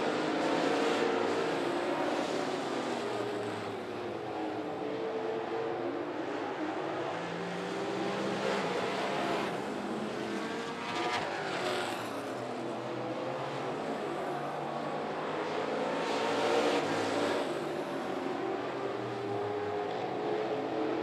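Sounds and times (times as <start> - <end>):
race car engines passing: 0.0 - 21.0.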